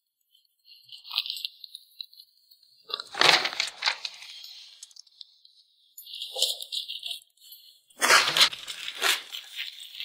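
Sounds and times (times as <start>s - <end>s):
paper crinkling in hands: 0.4s - 5.2s, 6.1s - 10.0s.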